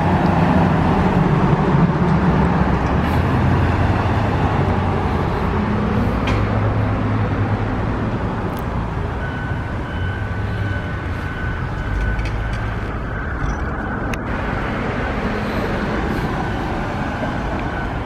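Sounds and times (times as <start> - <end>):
cars going by: 0.0 - 18.0.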